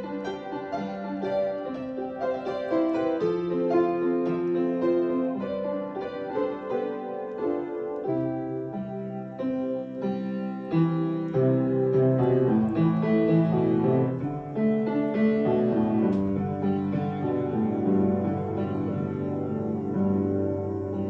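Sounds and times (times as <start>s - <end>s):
piano music: 0.0s - 21.0s.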